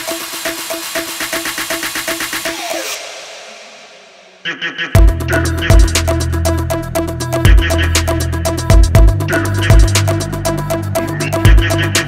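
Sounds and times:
electronic music with steady beat: 0.0s - 12.0s
heavy bass hit: 5.0s - 6.7s, 7.3s - 10.2s.

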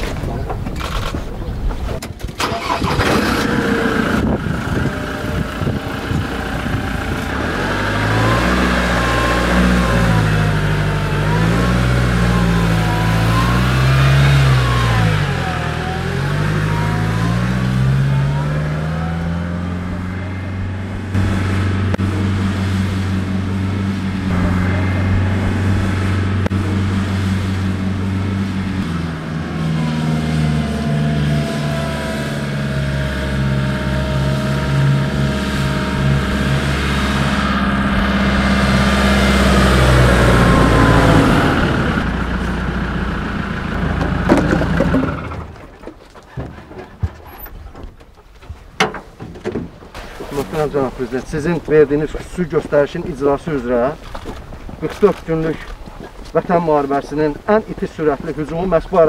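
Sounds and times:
off-road vehicle engine revving: 0.0s - 48.2s.

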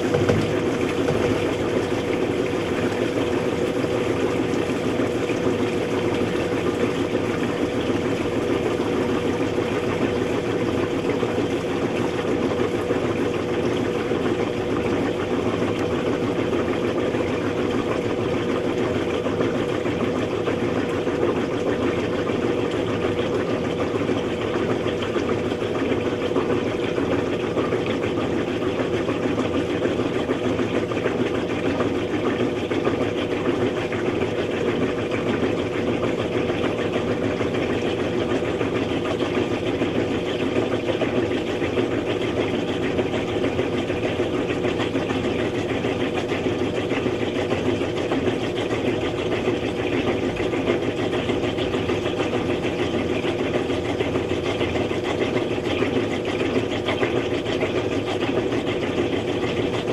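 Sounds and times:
washing machine spinning: 0.0s - 59.9s.

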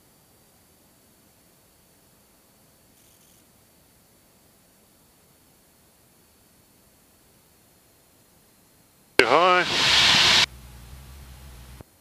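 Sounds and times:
clipped radio voice: 9.2s - 10.5s
radio click: 9.2s - 10.5s
low hum: 9.2s - 11.8s
radio hiss: 9.2s - 11.8s.

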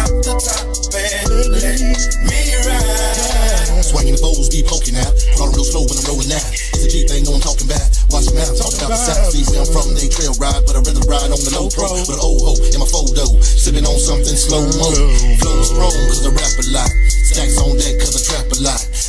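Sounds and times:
rapping over a hip hop beat: 0.0s - 19.0s.

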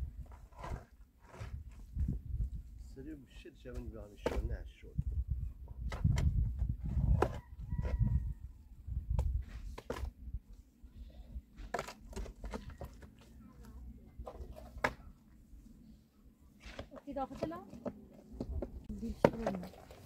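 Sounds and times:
shovel scraping stony earth: 0.1s - 2.2s.

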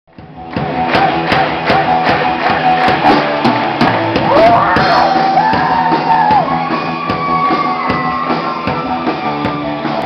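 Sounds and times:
electric guitars and bass: 0.1s - 10.0s
drum hits: 0.2s - 6.5s.

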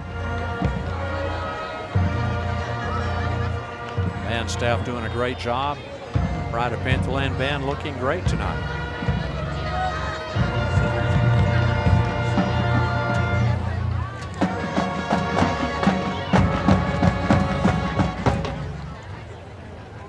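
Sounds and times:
marching band brass chords: 0.0s - 19.5s.

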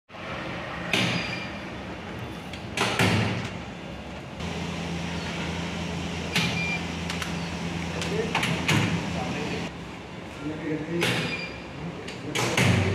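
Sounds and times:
steady low hum: 4.4s - 10.1s.

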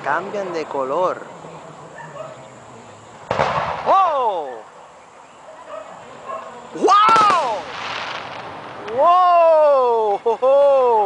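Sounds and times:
firework bursts: 6.8s - 9.1s.

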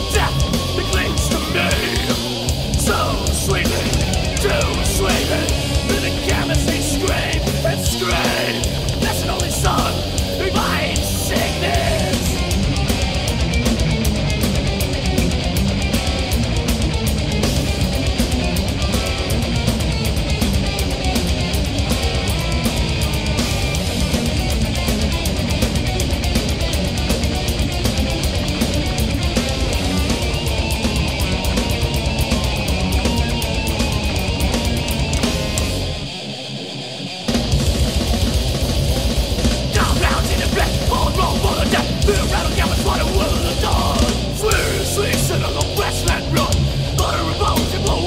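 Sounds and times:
bass: 0.0s - 48.0s
distorted electric guitar riffing: 0.0s - 48.0s
fast driving drums: 0.0s - 48.0s.

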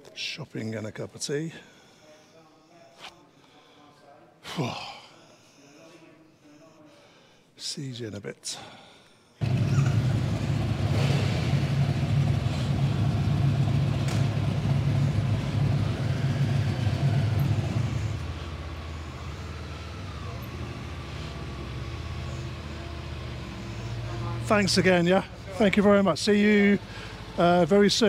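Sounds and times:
motorcycle engine starting and idling: 9.4s - 28.0s.

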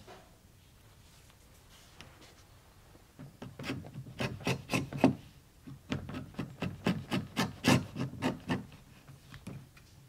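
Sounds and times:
chisel scraping leather: 3.4s - 8.9s.

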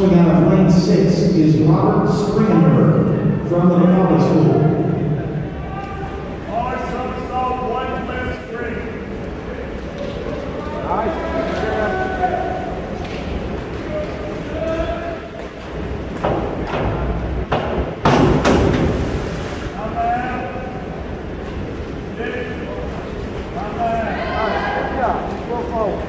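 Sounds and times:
swimmers splashing: 3.5s - 26.0s.

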